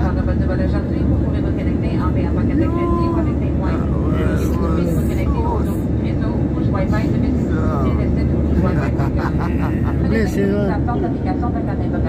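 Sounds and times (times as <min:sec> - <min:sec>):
airliner engines roaring in cabin: 0:00.0 - 0:12.0
public-address announcement: 0:00.0 - 0:12.0.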